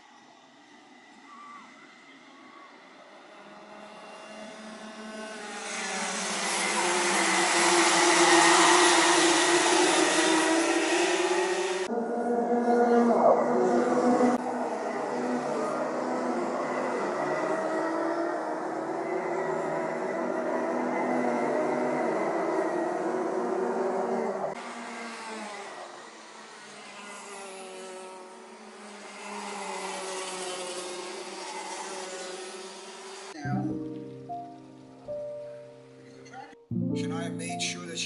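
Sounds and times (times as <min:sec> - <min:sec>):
racing kart engines at high revs: 0:00.0 - 0:33.5.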